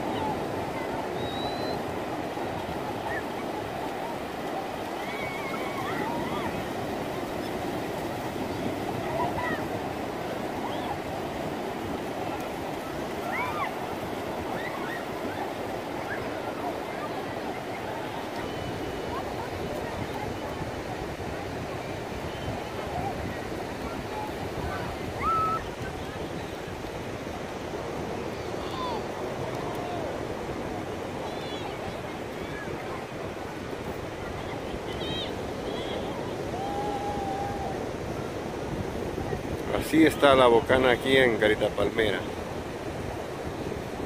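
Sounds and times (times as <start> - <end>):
distant voices and calls: 0.0 - 26.9
ocean surf washing onto beach: 0.0 - 44.0.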